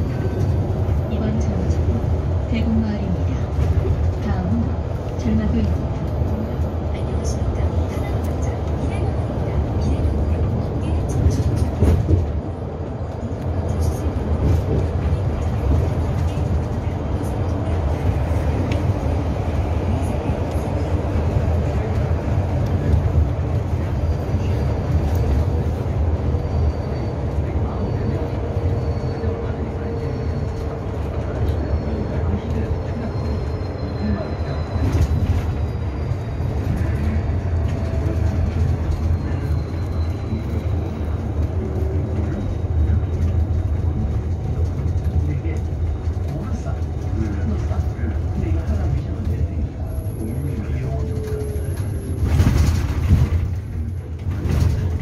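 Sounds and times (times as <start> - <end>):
bus road rumble: 0.0 - 55.0.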